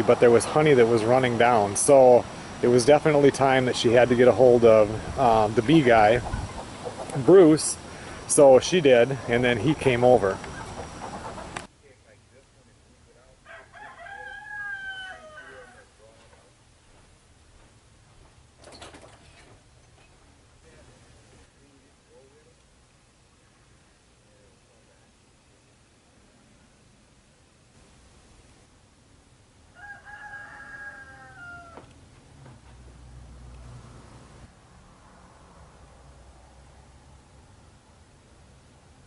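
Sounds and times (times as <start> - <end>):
rooster crowing: 13.4 - 16.0, 29.7 - 32.0.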